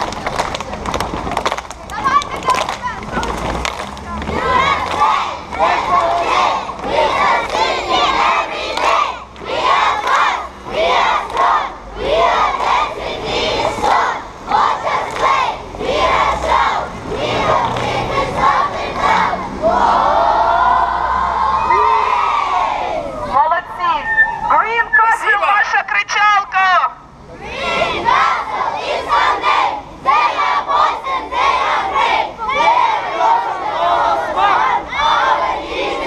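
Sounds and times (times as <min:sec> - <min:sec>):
crowd of children shouting: 0:01.9 - 0:24.6, 0:27.3 - 0:36.0.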